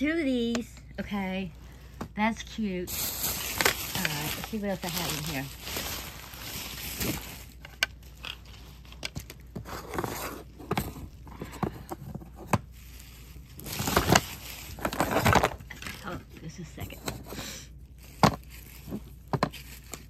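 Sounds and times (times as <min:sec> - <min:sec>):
rustling of bag or cloth: 0:02.8 - 0:08.9.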